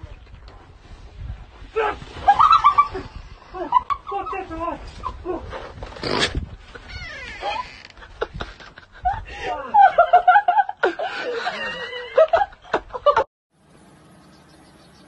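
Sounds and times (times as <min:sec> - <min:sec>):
people laughing and shrieking: 0:02.2 - 0:04.5.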